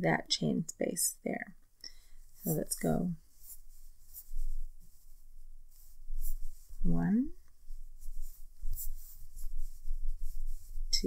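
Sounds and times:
yarn rustling on crochet hook: 2.2s - 11.0s.

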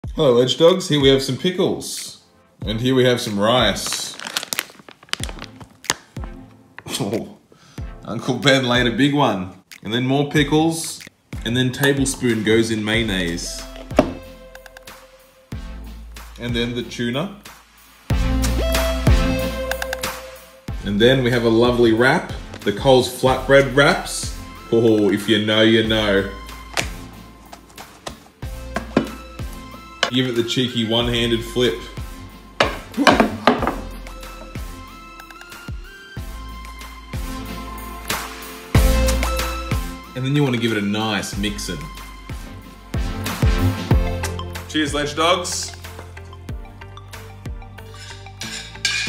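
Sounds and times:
background music: 0.0s - 49.0s
plastic pouch crinkling: 3.6s - 6.5s, 26.6s - 29.2s
rice dropping onto wooden board: 32.6s - 33.8s.

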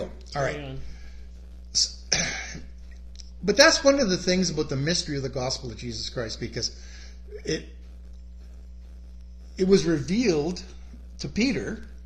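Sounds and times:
man speaking: 0.0s - 0.6s, 1.8s - 2.6s, 3.3s - 7.6s, 9.6s - 11.9s
low steady hum: 0.0s - 12.0s.

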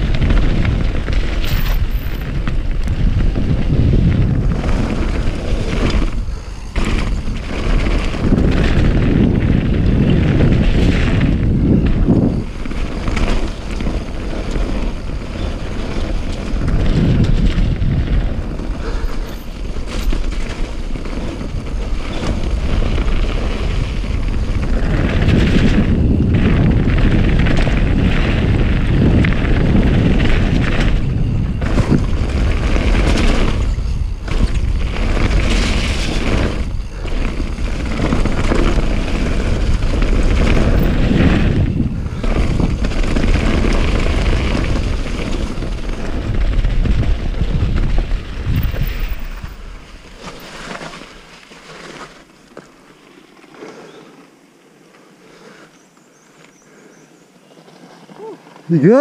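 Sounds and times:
wind buffeting microphone: 0.0s - 51.2s
tyres rolling over gravel: 0.0s - 56.5s.

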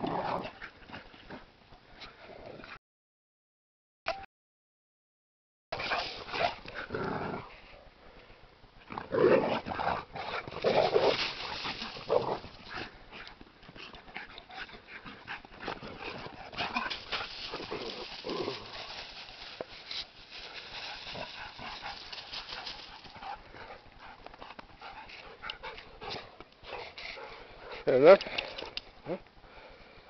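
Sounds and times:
dogs growling: 6.0s - 7.7s, 8.9s - 24.2s
paws scuffling on dry leaves: 10.6s - 12.9s, 16.0s - 23.4s.

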